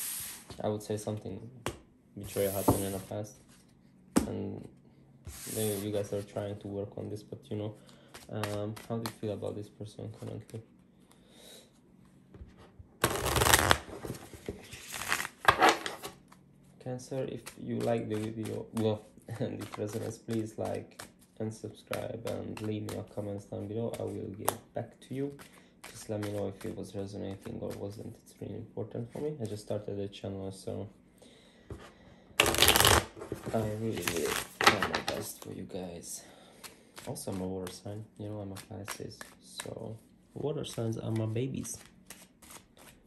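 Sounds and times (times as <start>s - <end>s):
cards shuffling: 8.1s - 9.3s, 13.0s - 16.2s, 17.4s - 23.3s, 25.4s - 27.9s, 32.4s - 35.5s, 38.5s - 39.8s, 40.7s - 43.0s
cards flicking: 13.0s - 13.9s, 14.8s - 15.9s, 32.4s - 33.2s.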